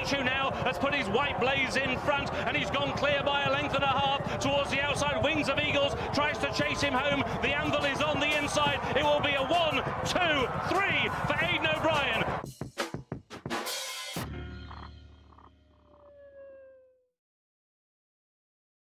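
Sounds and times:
racecourse commentary: 0.0 - 12.4
crowd noise: 0.0 - 12.5.

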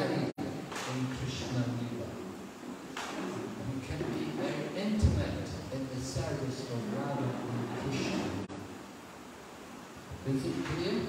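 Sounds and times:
room background hiss: 0.0 - 11.0.

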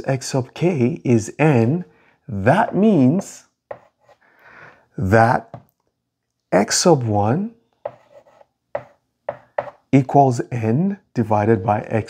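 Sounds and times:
chalk writing on a blackboard: 3.7 - 4.2, 7.8 - 9.8.

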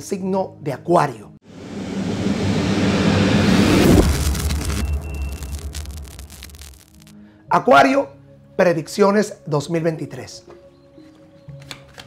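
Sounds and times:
wind-like whoosh: 1.4 - 7.0.

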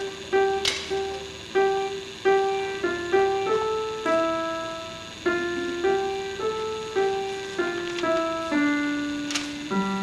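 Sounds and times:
slow piano notes: 0.0 - 10.0.

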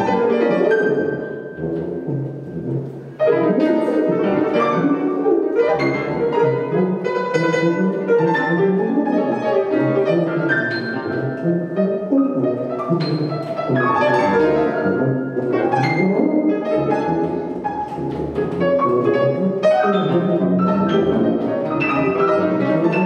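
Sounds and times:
grand piano: 0.0 - 23.0
tuba: 0.0 - 23.0.

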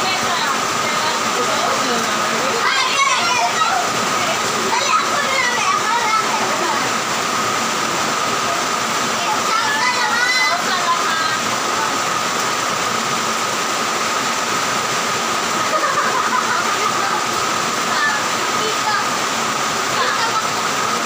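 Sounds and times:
faint voices talking: 0.0 - 12.8, 15.4 - 21.0
loud steady hiss: 0.0 - 21.0.

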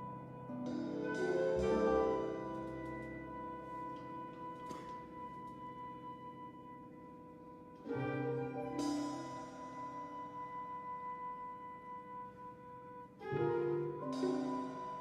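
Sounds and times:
chamber ensemble playing slowly: 0.0 - 15.0.

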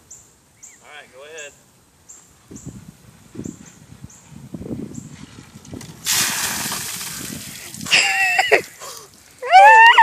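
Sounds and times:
water splashing on concrete: 5.8 - 9.0.

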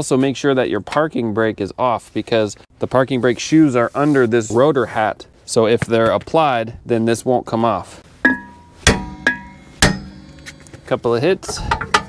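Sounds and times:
hammer striking metal: 8.1 - 12.0.

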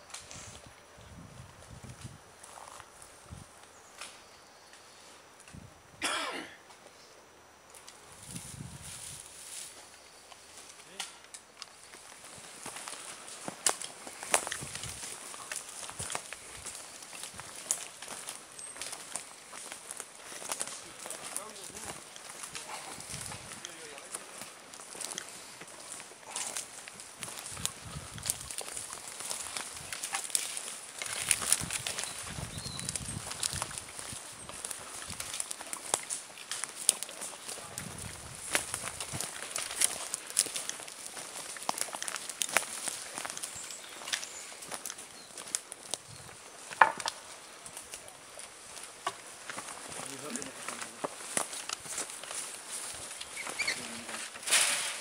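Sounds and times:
footsteps crunching on forest floor: 1.4 - 5.0, 7.7 - 55.0
twigs snapping underfoot: 10.3 - 55.0.

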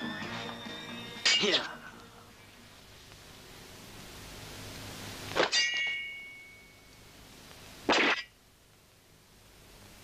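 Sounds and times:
metallic clang ringing: 1.2 - 1.7, 5.4 - 6.9.

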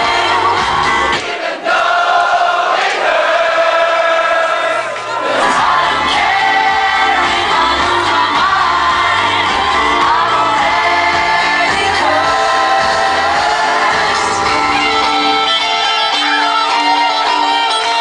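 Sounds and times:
loud pop music with vocals: 0.0 - 18.0.

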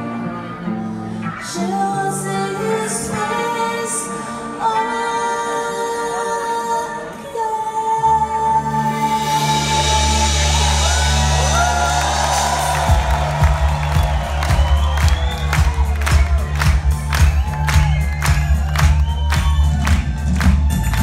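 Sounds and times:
crowd cheering and whooping: 9.8 - 21.0
drum beat: 10.4 - 21.0.

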